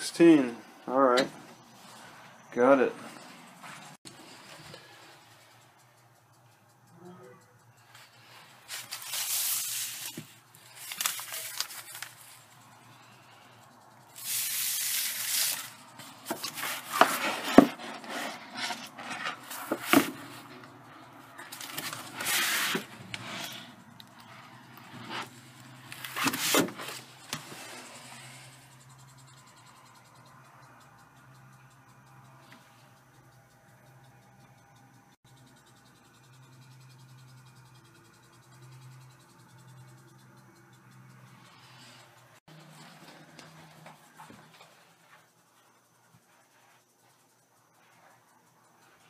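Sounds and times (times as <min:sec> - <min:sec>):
sharp clicks: 0:04.0 - 0:17.7, 0:19.1 - 0:42.3
paper pages rustling: 0:08.7 - 0:12.5, 0:21.5 - 0:23.7, 0:25.9 - 0:27.5.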